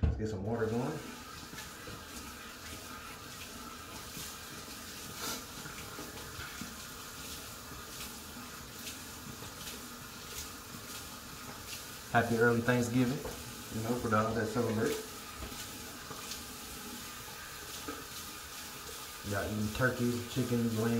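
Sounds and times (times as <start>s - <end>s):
water splashing: 0.4s - 20.9s
tap running into sink: 12.9s - 16.4s, 17.5s - 19.0s.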